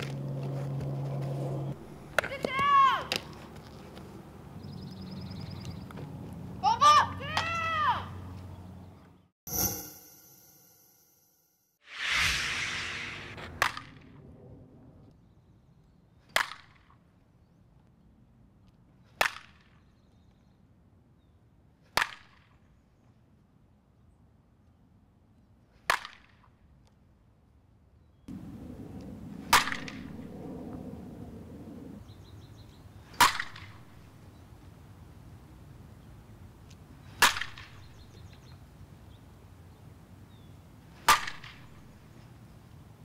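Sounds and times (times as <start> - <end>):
whoosh: 9.5 - 14.6
bat cracking a ball: 29.5 - 30.2, 33.2 - 33.8, 37.2 - 37.8, 41.0 - 41.8.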